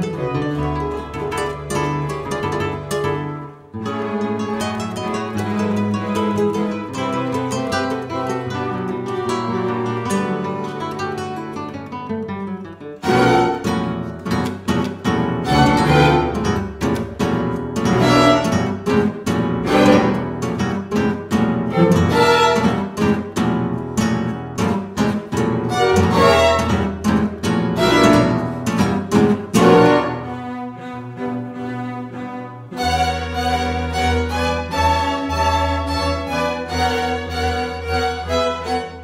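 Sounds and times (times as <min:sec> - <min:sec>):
string ensemble playing: 0:00.0 - 0:11.6, 0:13.0 - 0:39.0
classical guitars: 0:00.0 - 0:39.0.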